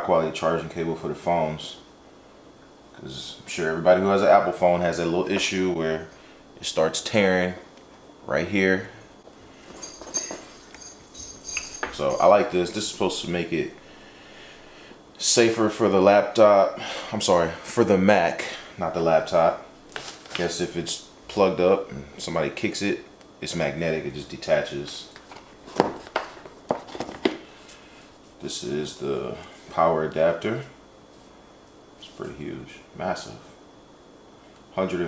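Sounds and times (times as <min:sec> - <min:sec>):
metallic clinking of cable connectors: 0:09.7 - 0:12.5.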